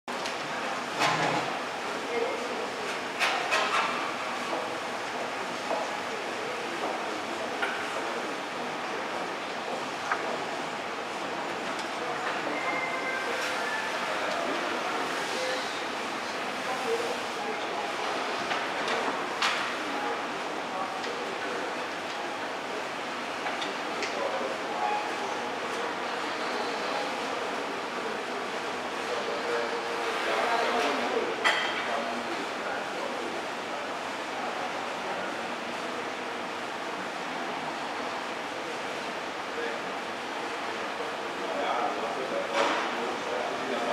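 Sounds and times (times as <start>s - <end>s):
steady noisy hum: 0.1s - 43.9s.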